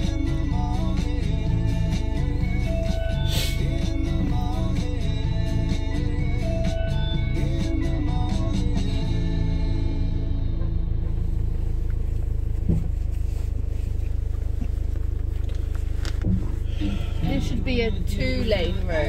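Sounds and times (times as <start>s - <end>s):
engine and tyres rumble: 0.0s - 19.0s
music on car stereo: 0.0s - 19.0s.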